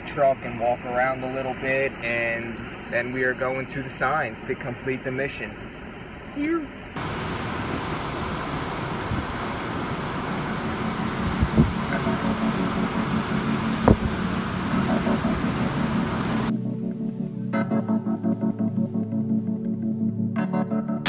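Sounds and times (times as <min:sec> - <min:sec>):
keyboard music: 0:11.6 - 0:21.0.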